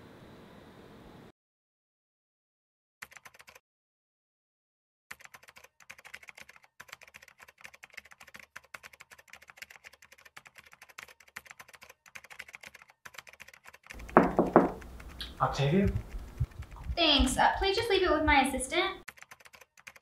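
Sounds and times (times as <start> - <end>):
typing on laptop keyboard: 3.0 - 3.6, 5.1 - 17.3, 19.0 - 20.0.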